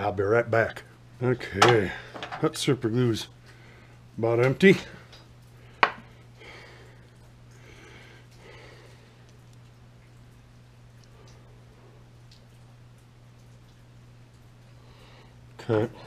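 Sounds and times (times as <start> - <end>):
steady low hum: 0.0 - 16.0
soft breaths: 4.8 - 9.4, 14.6 - 16.0.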